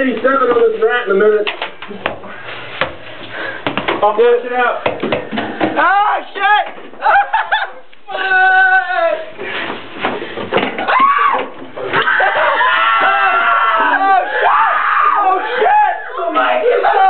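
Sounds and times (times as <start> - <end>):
knocks: 4.8 - 5.9
people shouting and screaming: 5.8 - 9.4, 10.8 - 17.0.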